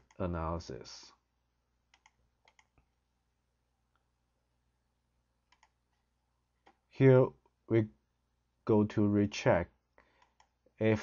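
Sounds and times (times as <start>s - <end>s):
computer mouse clicks: 1.9s - 2.9s, 5.5s - 6.0s, 10.0s - 10.6s.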